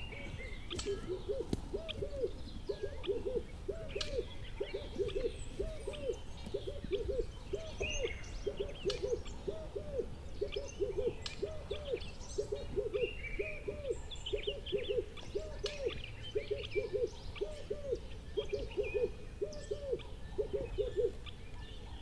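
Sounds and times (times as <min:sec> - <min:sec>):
low hooting bird calls: 0:00.0 - 0:22.0
small birds chirping: 0:00.0 - 0:22.0.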